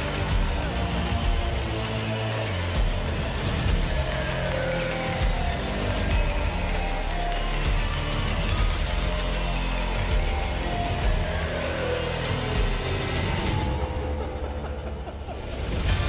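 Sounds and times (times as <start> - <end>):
music with deep bass: 0.0 - 16.0.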